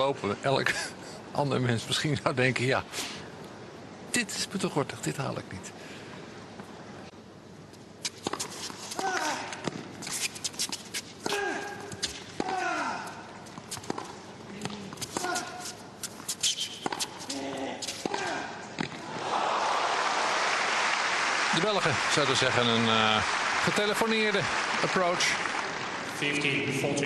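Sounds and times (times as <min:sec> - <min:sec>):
tennis ball bouncing: 0:16.8 - 0:17.2
applause: 0:19.4 - 0:26.5.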